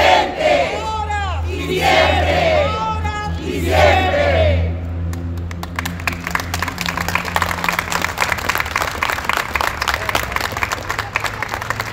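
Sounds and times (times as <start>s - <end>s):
low hum: 0.0s - 9.6s
crowd applauding: 5.1s - 11.9s.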